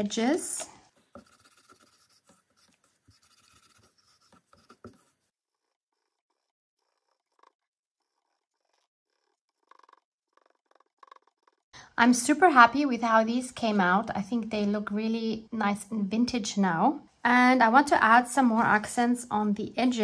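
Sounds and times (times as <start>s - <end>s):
wipe rubbing on paper: 1.0s - 5.3s.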